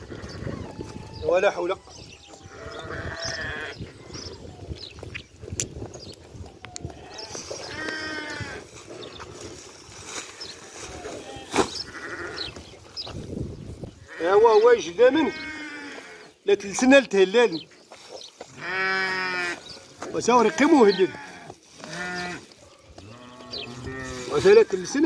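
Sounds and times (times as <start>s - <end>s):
sheep bleating: 2.4s - 3.7s, 6.8s - 8.6s, 11.0s - 12.5s, 15.1s - 16.2s, 18.5s - 19.6s, 20.2s - 24.4s.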